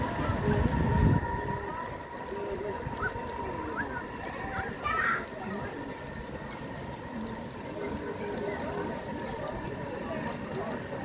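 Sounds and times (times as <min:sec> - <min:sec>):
model train coaches rumbling: 0:00.0 - 0:11.0.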